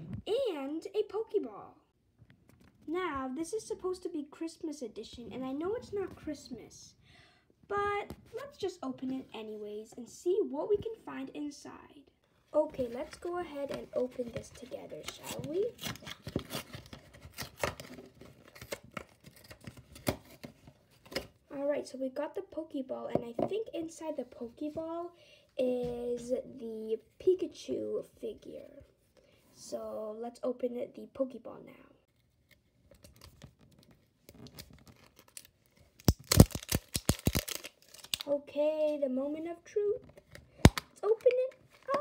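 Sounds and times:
plastic rubbing and scratching: 12.7s - 21.2s, 32.1s - 38.4s, 40.0s - 42.0s
sharp plastic cracks and clicks: 32.5s - 38.3s, 40.1s - 42.0s
plastic packaging crinkling: 32.6s - 38.3s.

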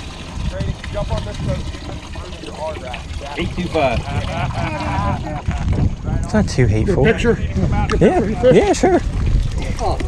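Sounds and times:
water trickling: 0.0s - 10.0s
people talking: 0.5s - 10.0s.

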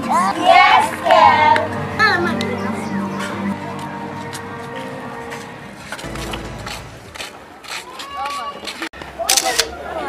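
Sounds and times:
people talking: 0.0s - 4.4s.

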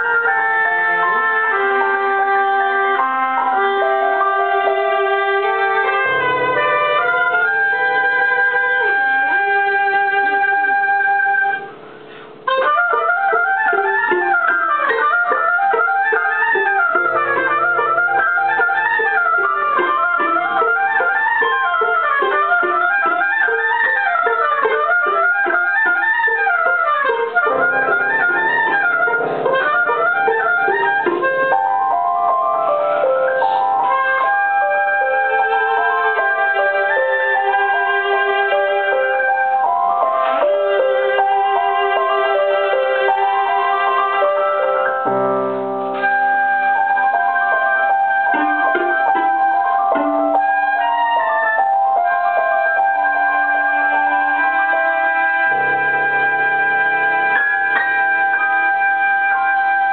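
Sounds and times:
instrumental ensemble playing: 0.0s - 59.9s.

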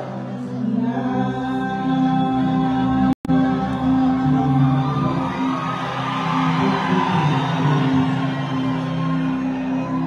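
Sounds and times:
live concert music: 0.0s - 10.0s
audience cheering and whooping: 4.6s - 10.0s.

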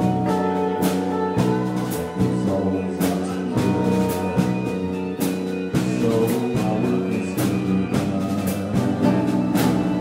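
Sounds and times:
drum kit steady beat: 0.0s - 10.0s
strummed guitars: 0.0s - 10.0s.

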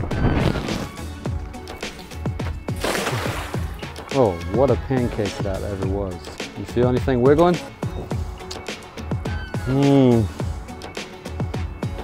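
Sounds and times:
music with steady beat: 0.1s - 12.0s
cast net splashing on water: 2.7s - 4.2s.

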